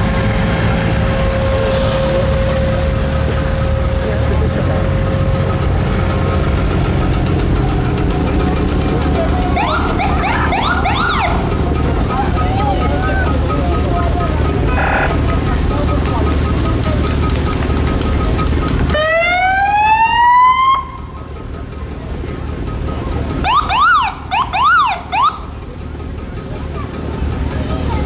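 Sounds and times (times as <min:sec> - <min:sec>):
steady low rumble: 0:00.0 - 0:19.0
siren rising wail: 0:09.6 - 0:11.4, 0:18.9 - 0:21.0
siren yelps: 0:09.6 - 0:11.4.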